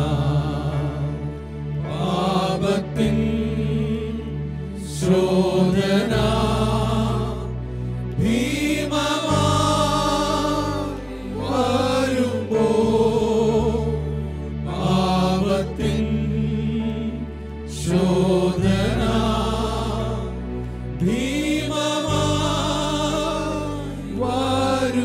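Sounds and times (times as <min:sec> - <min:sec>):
electric bass: 0:00.0 - 0:25.0
keyboard: 0:00.0 - 0:25.0
men singing worship song: 0:00.0 - 0:25.0.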